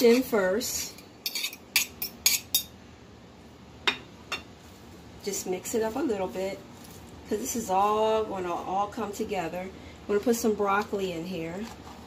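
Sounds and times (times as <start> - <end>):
metal utensils clinking on ceramic bowl: 1.3 - 2.7.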